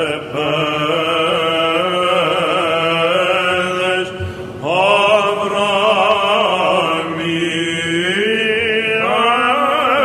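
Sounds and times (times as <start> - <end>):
cantors chanting melody: 0.0 - 10.0
low sung drone: 0.0 - 10.0.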